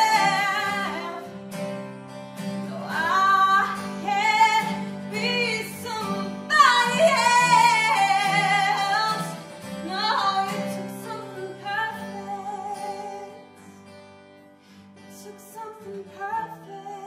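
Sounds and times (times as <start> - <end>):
woman singing ballad: 0.0 - 1.4, 2.6 - 13.7, 15.0 - 17.0.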